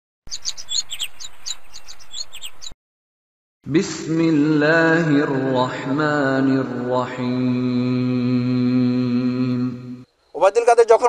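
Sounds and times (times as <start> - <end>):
songbirds chirping: 0.3 - 2.8, 3.6 - 11.0.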